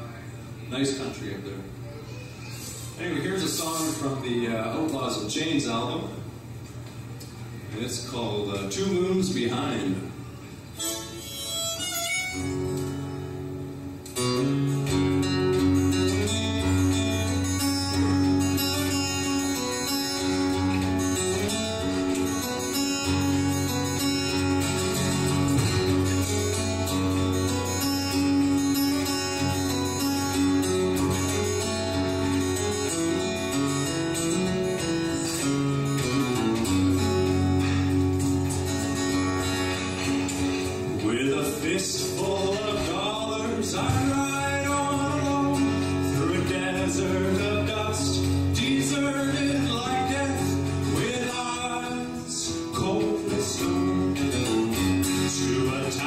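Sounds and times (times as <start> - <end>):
harmonica held notes: 10.7 - 13.6
strummed acoustic guitar: 10.8 - 56.0.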